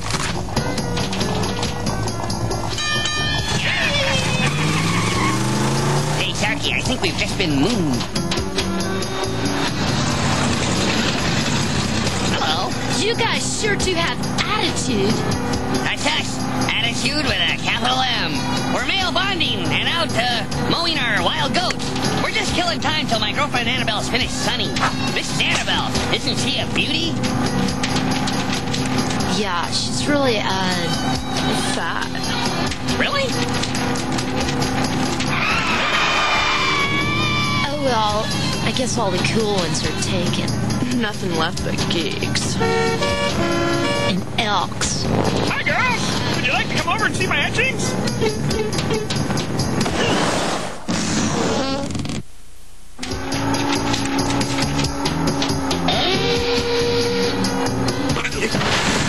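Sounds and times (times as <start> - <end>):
clattering sound effects: 0.0 - 13.0, 21.2 - 29.7, 32.2 - 36.7, 44.4 - 51.5, 53.0 - 56.7, 58.2 - 59.0
cartoon action music: 0.5 - 51.4, 53.0 - 59.0.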